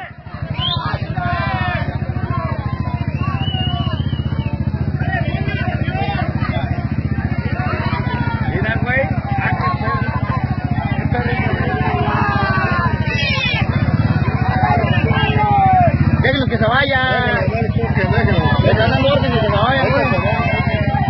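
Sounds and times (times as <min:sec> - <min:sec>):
crowd shouting: 0:00.0 - 0:21.0
engine running: 0:00.0 - 0:21.0.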